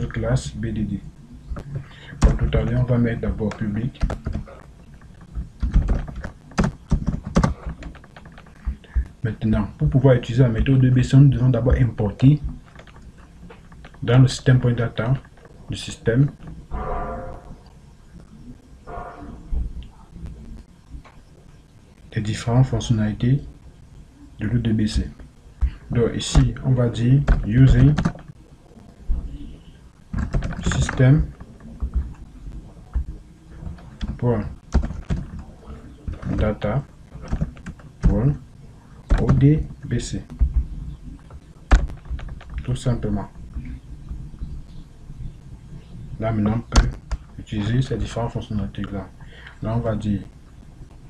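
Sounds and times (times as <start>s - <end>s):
computer keyboard typing: 3.5s - 8.9s, 27.3s - 28.3s, 30.1s - 32.2s, 33.7s - 35.5s.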